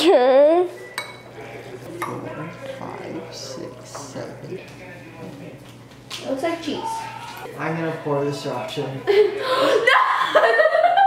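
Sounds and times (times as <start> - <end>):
fork clinking on ceramic bowl: 1.0 - 1.3.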